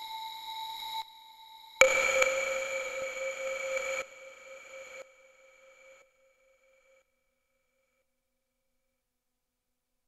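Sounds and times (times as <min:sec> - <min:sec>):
electronic noise wash: 0:01.8 - 0:05.8.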